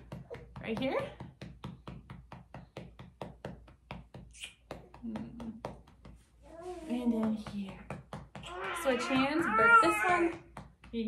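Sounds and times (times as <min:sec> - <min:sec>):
hands patting baby's back: 0:00.0 - 0:11.0.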